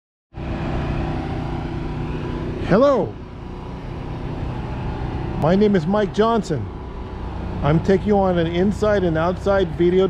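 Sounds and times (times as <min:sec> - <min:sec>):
vehicle engine idling: 0:00.4 - 0:10.0.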